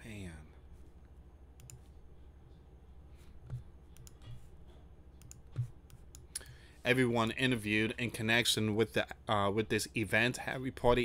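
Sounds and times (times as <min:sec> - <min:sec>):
steady low hum: 0:00.0 - 0:11.0
mouse and keyboard clicks: 0:03.4 - 0:04.5, 0:05.2 - 0:06.4.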